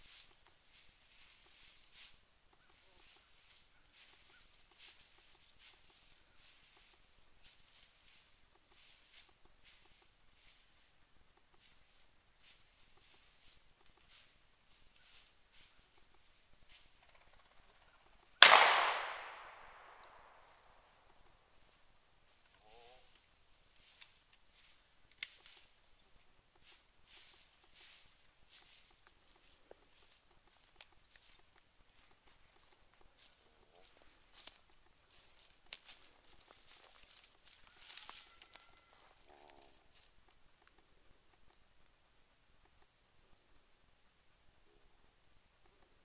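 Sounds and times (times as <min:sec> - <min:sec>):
footsteps in dry leaves: 0:00.0 - 0:10.9, 0:11.6 - 0:15.9, 0:26.6 - 0:40.1
sharp snaps: 0:18.4 - 0:20.4
shotgun shot echoing: 0:18.4 - 0:20.4.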